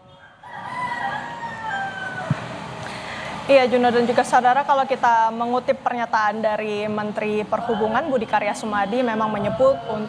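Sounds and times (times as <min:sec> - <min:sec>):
rooster crowing: 0:00.0 - 0:02.6.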